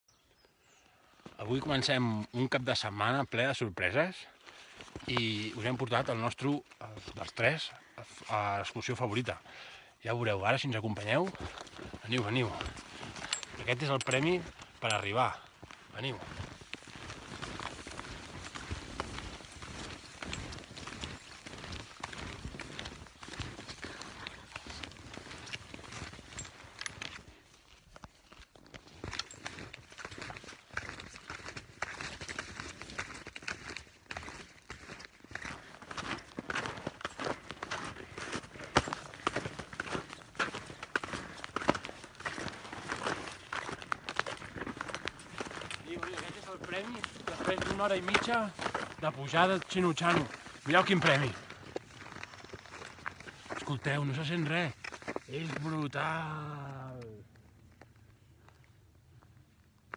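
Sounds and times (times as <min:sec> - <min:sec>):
footsteps crunching in snow: 0:01.2 - 0:58.7.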